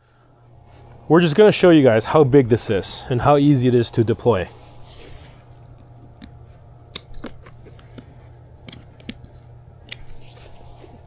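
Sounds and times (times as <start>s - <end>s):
steady low hum: 0.0s - 11.0s
plastic buckles clicking: 5.8s - 10.2s
fabric handling: 9.2s - 11.0s.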